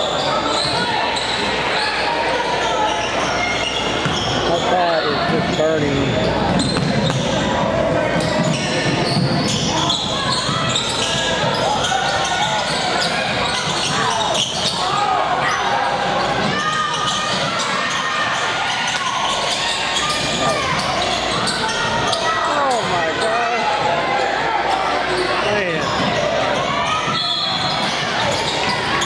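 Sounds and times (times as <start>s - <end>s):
players calling out: 0.0s - 29.0s
sneakers squeaking: 0.0s - 29.0s.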